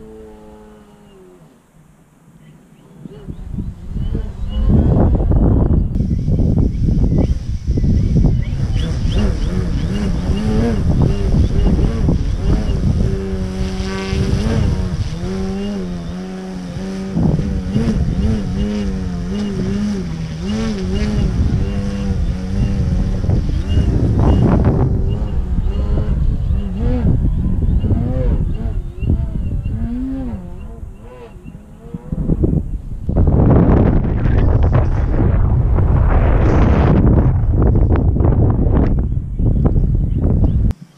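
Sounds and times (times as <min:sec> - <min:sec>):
model plane motor and propeller: 0:00.0 - 0:01.7, 0:03.0 - 0:33.0
wind rumble on microphone: 0:00.0 - 0:40.8.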